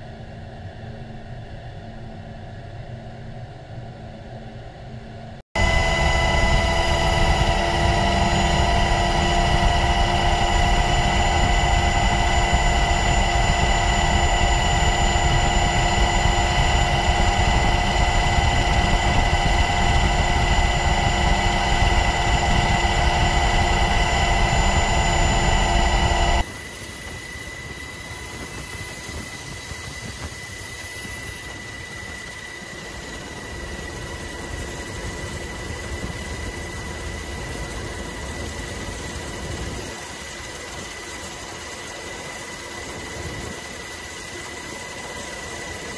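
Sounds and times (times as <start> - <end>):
aircraft engine drone: 0.0 - 45.9
constant whining tones: 0.0 - 45.9.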